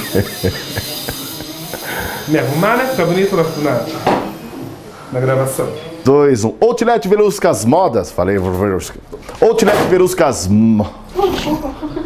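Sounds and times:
aerosol can spraying: 0:00.0 - 0:03.5.

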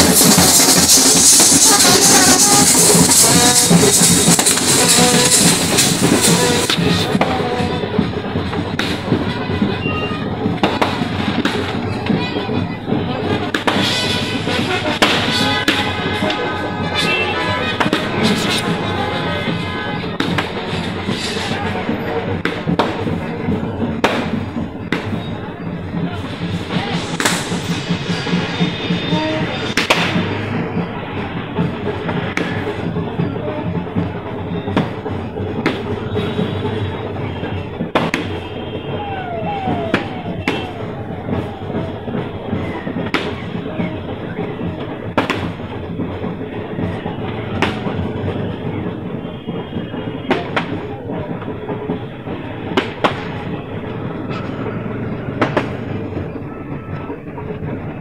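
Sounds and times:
auto-rickshaw engine running: 0:00.0 - 0:27.9, 0:28.5 - 0:58.0.

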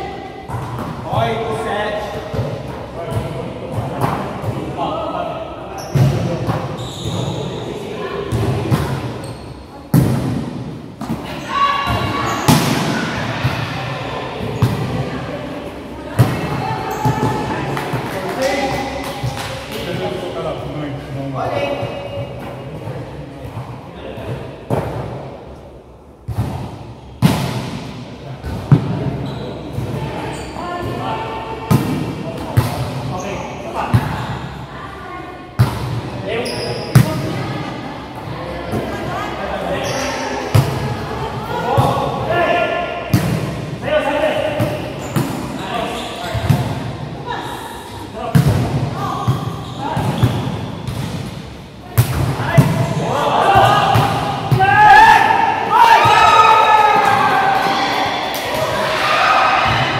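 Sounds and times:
hands slapping volleyball: 0:17.7 - 0:19.9.

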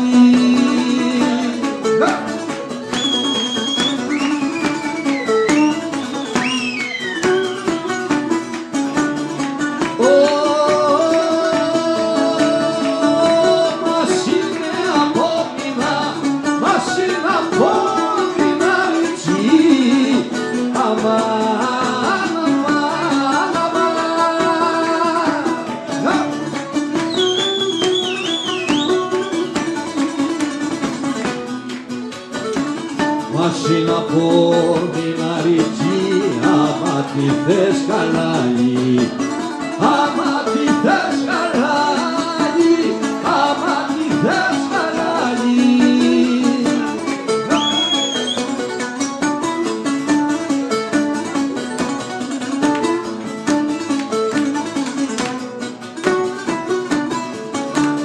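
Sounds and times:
person singing: 0:00.0 - 0:02.6, 0:09.8 - 0:26.6, 0:33.2 - 0:48.1
plucked string instruments: 0:00.0 - 0:58.0.

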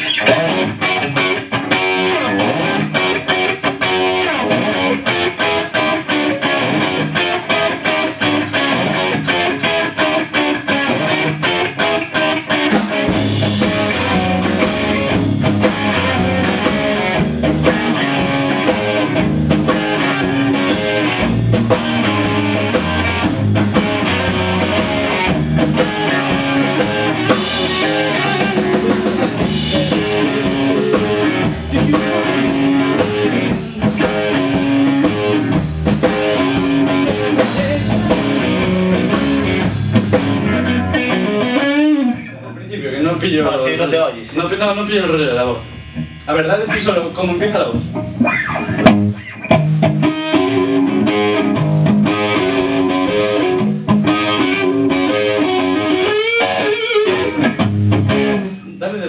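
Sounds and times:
drum kit: 0:00.0 - 0:41.9, 0:44.2 - 0:58.7
distorted electric guitars: 0:00.0 - 0:59.0.

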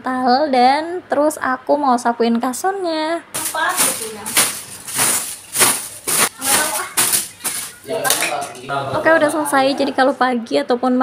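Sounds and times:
stick broom sweeping cloth: 0:03.4 - 0:07.8.

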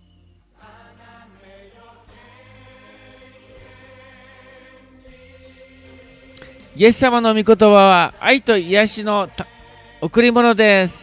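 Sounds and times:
choir singing slow chords: 0:00.0 - 0:10.4.

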